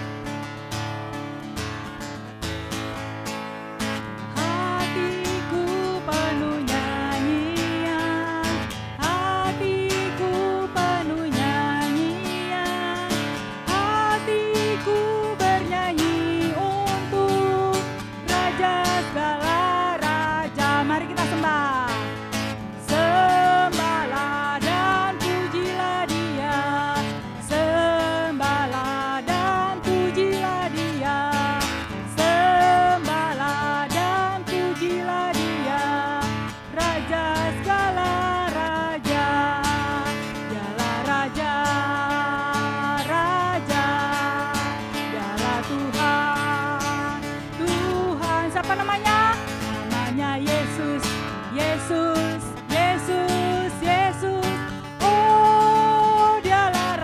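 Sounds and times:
strummed acoustic guitar: 0.0 - 57.0
woman singing into microphone: 3.8 - 57.0.

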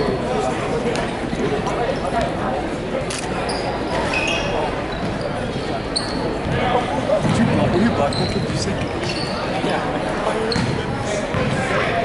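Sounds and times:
spectators talking: 0.0 - 12.0
sneaker squeaks on court: 3.4 - 6.6, 7.2 - 9.7, 10.4 - 11.6.

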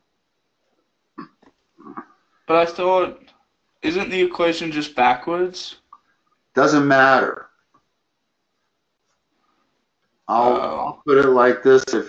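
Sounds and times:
faint vocal noises: 10.3 - 12.0
person murmuring: 10.3 - 12.0.

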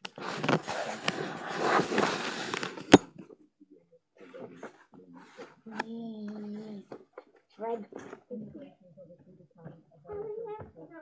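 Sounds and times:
camera rustling and scraping: 0.0 - 3.2.

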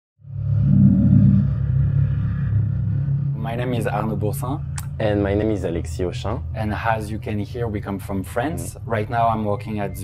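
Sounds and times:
deep synthesized rumble: 0.2 - 10.0.

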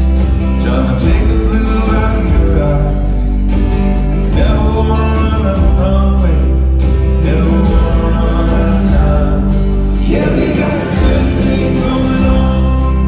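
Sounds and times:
drums: 0.0 - 13.0
electric bass: 0.0 - 13.0
man singing lead vocal: 0.0 - 13.0
strummed acoustic guitar: 0.0 - 13.0.

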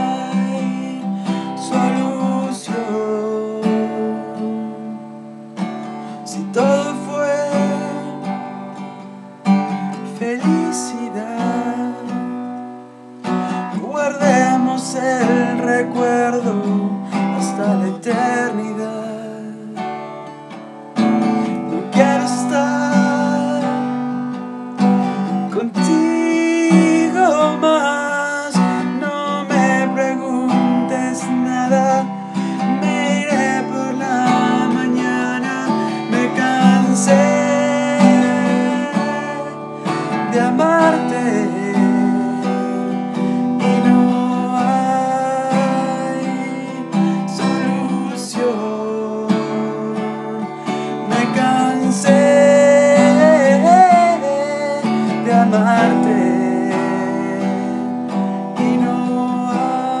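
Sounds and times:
acoustic guitar strumming: 0.0 - 60.0
man singing: 0.0 - 60.0.

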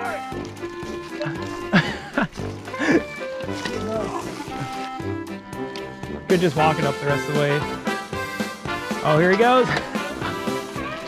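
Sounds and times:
background music held notes: 0.0 - 11.0.

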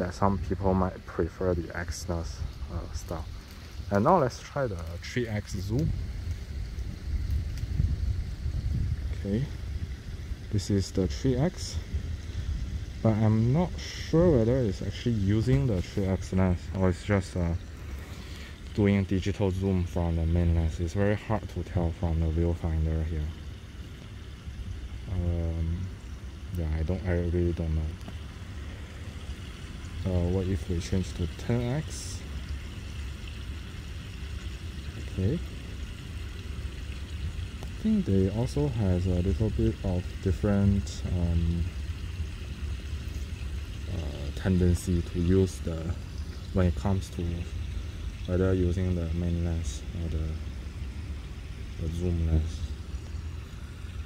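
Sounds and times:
low rumble: 0.0 - 22.6
faint hiss: 0.0 - 54.0
wind buffeting microphone: 5.0 - 17.4.

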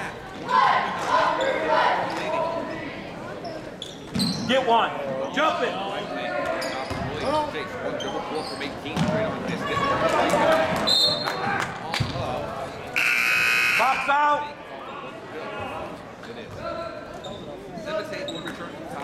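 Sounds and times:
spectators shouting and talking: 0.0 - 19.0.

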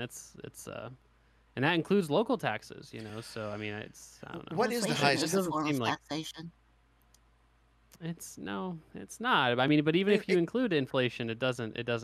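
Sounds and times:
person speaking: 0.0 - 0.9, 1.6 - 6.4, 8.0 - 12.0.

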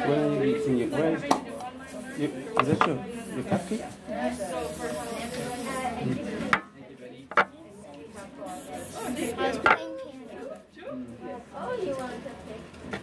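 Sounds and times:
people talking indistinctly: 0.0 - 12.7.

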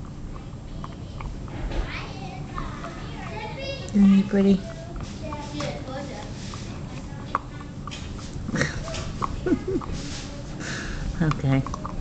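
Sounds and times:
dog chewing a treat: 0.0 - 12.0.

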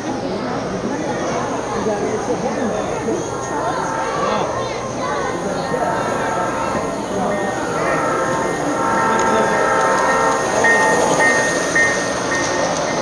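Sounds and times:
model train running on track: 0.0 - 13.0
voices: 0.0 - 13.0.

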